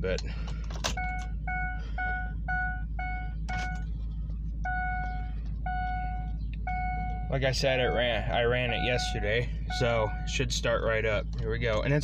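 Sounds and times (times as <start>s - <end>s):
dashboard warning beeps: 0.8s - 3.9s, 4.6s - 10.8s
longer warning tones: 0.9s - 3.9s, 4.6s - 10.8s.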